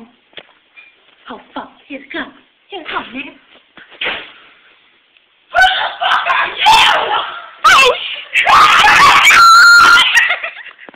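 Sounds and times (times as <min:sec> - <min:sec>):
people screaming: 0:05.5 - 0:10.5.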